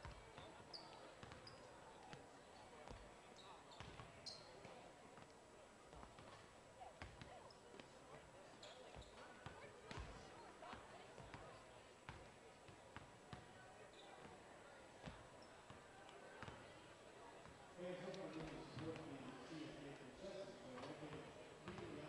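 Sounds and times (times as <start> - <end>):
crowd chatter: 0.0 - 22.0
sneaker squeaks: 0.7 - 1.7, 3.4 - 4.7, 8.6 - 9.4, 13.9 - 14.3.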